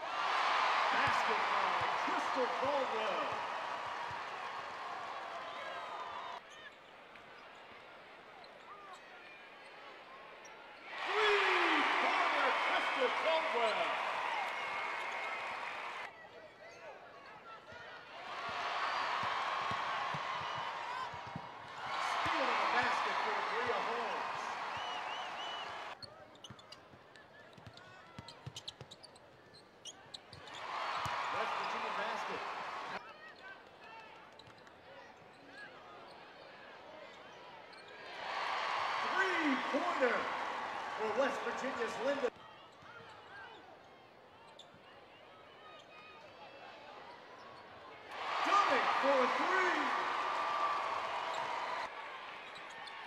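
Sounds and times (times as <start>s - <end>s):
crowd noise: 0.0s - 26.0s, 30.4s - 33.8s, 36.8s - 53.0s.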